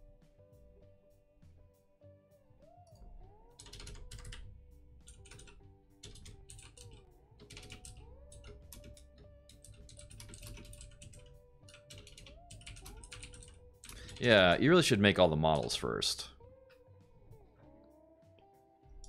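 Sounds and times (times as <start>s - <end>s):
faint background music: 0.0s - 19.0s
typing on computer keyboard: 3.6s - 4.4s, 5.0s - 14.5s.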